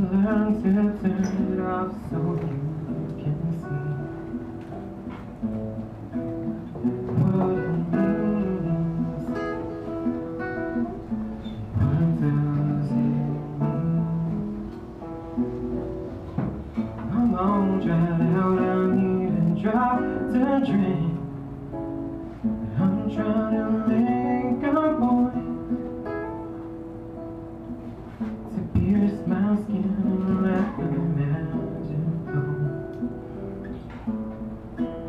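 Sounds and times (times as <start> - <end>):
acoustic guitar playing: 0.0 - 35.0.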